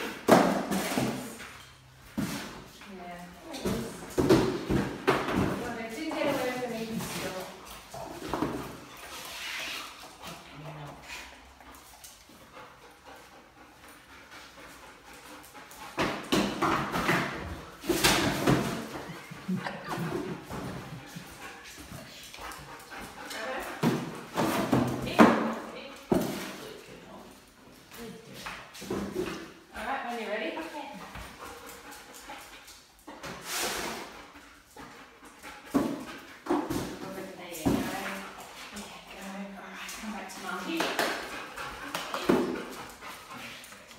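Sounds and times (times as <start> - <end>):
dog bumping cardboard boxes: 0.0 - 1.4, 3.6 - 7.4, 15.9 - 19.1.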